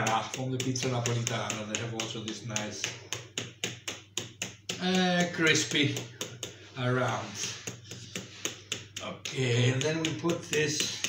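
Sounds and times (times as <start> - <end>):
fingers tapping pastry on tray: 0.0 - 11.0.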